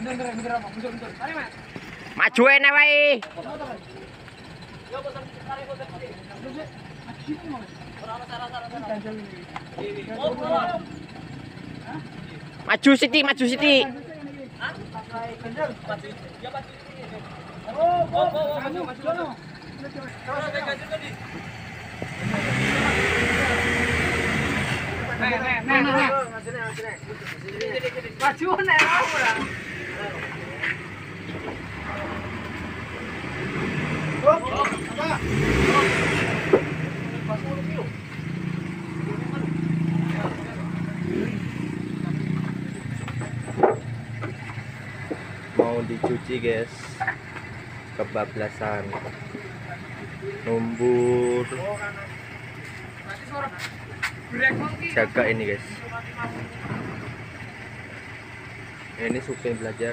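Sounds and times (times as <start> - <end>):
vehicle engine running: 0.0 - 59.9
men shouting: 5.9 - 16.1, 17.1 - 21.4.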